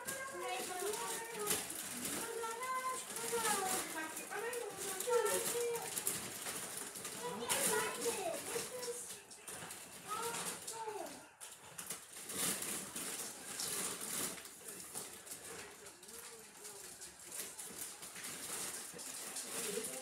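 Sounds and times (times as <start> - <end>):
indistinct talking: 0.0 - 6.1, 7.1 - 11.4.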